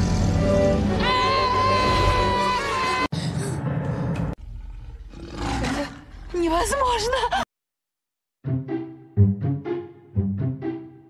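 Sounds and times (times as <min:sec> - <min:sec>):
lion roaring: 0:03.4 - 0:06.5.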